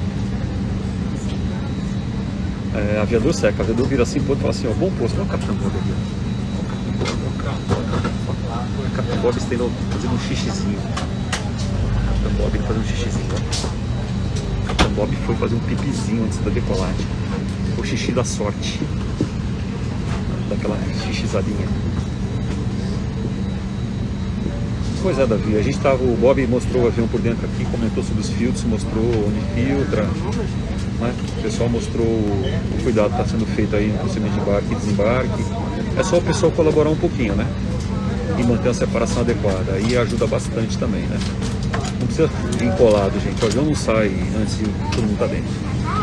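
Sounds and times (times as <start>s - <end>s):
faint high whine: 0.0s - 41.4s
airplane cabin ventilation drone: 0.0s - 46.0s.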